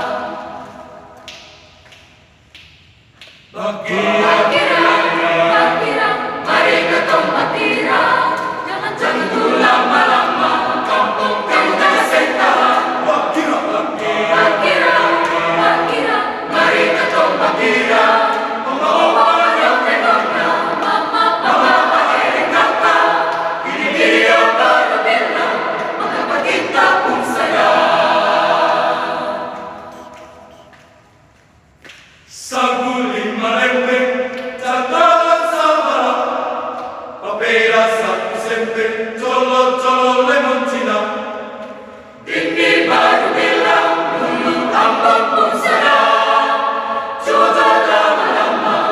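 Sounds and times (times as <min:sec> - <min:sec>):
mixed choir singing unaccompanied: 0:00.0 - 0:01.4, 0:03.5 - 0:30.8, 0:32.3 - 0:48.9.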